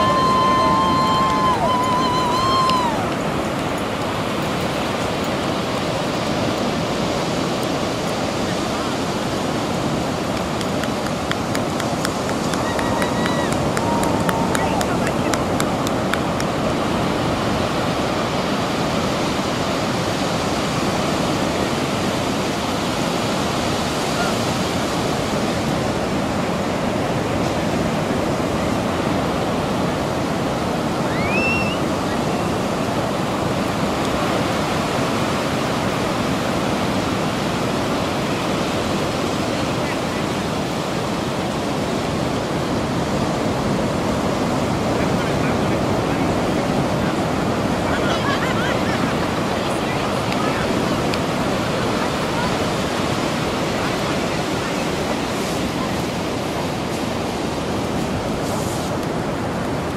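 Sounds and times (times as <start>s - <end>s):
ocean surf breaking: 0.0s - 59.9s.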